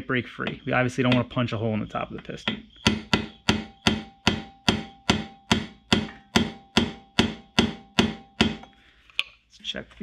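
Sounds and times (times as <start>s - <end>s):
light metal tapping: 0.4s - 1.4s.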